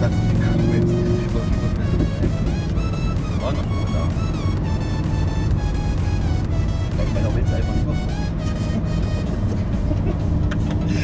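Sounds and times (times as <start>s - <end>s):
car engine running: 0.0s - 11.0s
music: 0.0s - 11.0s.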